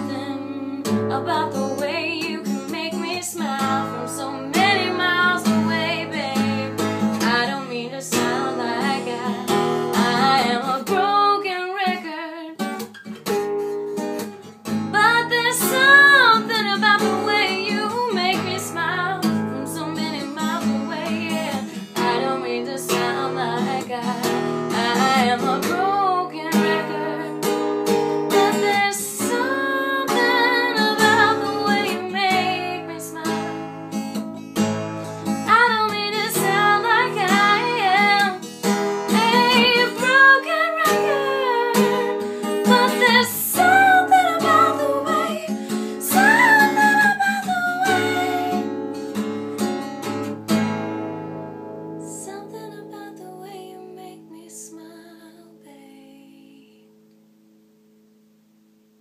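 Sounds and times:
woman singing: 0:00.0 - 0:12.8, 0:14.9 - 0:27.5, 0:28.3 - 0:34.2, 0:35.4 - 0:48.7, 0:52.0 - 0:56.9
acoustic guitar strumming: 0:00.0 - 0:52.3.

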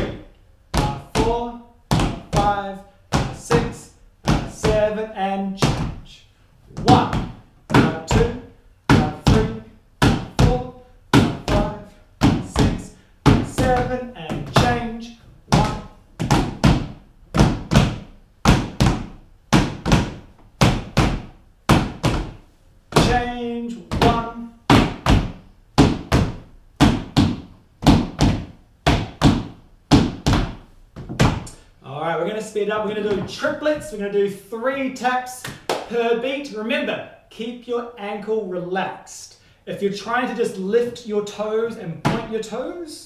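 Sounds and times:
tap shoes on wooden floor: 0:00.7 - 0:04.9, 0:05.6 - 0:06.1, 0:06.8 - 0:14.9, 0:15.5 - 0:31.6, 0:33.0 - 0:34.0.

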